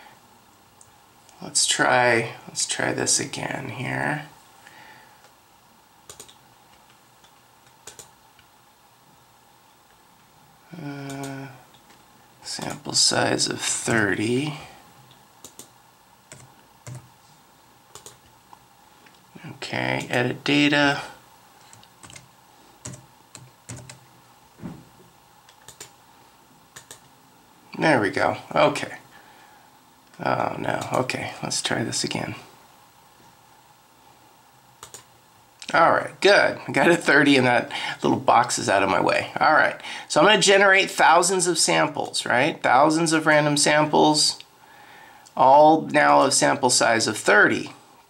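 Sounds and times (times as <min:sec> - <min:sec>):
faint room noise: 0:00.0 - 0:48.0
computer mouse clicking: 0:06.0 - 0:08.5, 0:15.1 - 0:17.1, 0:17.9 - 0:18.3, 0:21.6 - 0:24.0, 0:25.5 - 0:26.0, 0:26.7 - 0:27.1, 0:34.8 - 0:35.1
keyboard keystrokes: 0:06.1 - 0:06.4, 0:07.2 - 0:08.1.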